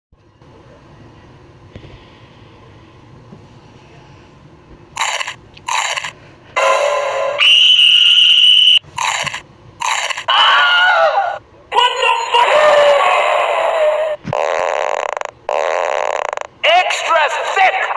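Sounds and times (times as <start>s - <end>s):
high shriek: 6.6s - 9.2s
person grunting and crying out: 10.3s - 11.4s, 12.3s - 14.2s.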